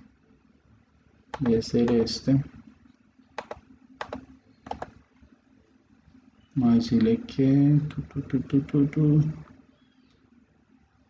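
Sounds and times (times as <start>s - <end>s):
computer mouse clicking: 1.3s - 2.1s, 3.4s - 5.0s.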